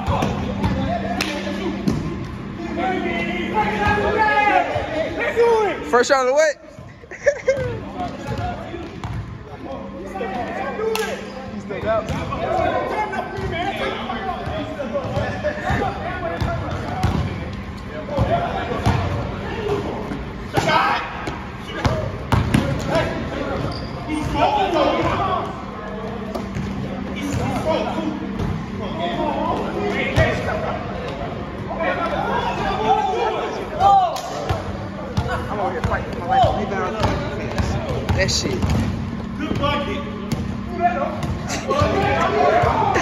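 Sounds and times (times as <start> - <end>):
players talking and calling out: 0.0 - 43.0
person laughing: 6.9 - 7.9.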